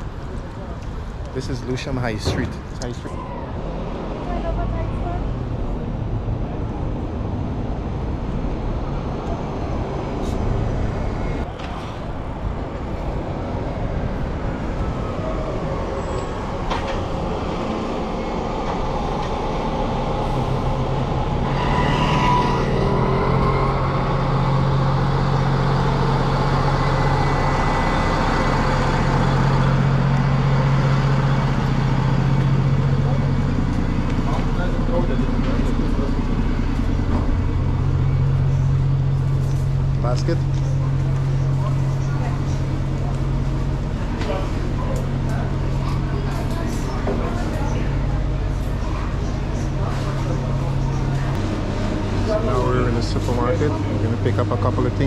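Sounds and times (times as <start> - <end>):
bus engine hum: 0.0 - 55.0
street traffic: 0.0 - 55.0.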